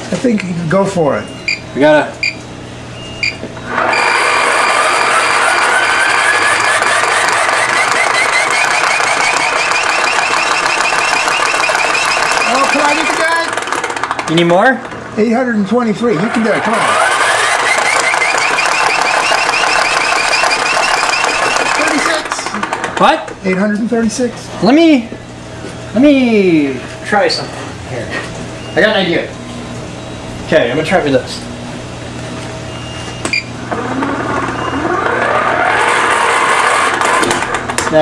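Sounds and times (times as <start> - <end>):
hand-crank generator whining: 3.0 - 23.8, 32.7 - 38.0.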